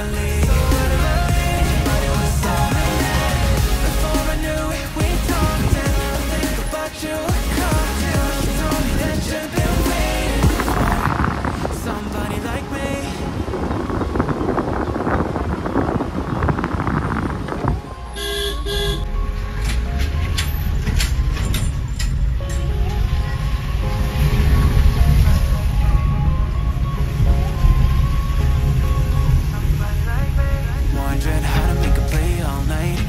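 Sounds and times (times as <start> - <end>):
car driving rumble: 0.0 - 33.0
road and wind noise: 0.0 - 33.0
vehicle horn blasts: 18.1 - 19.1
faint music: 19.0 - 33.0.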